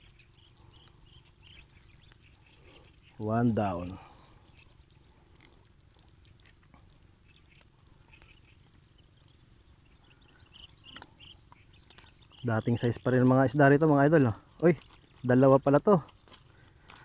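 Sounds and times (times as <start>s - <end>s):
rustles: 0.0s - 17.0s.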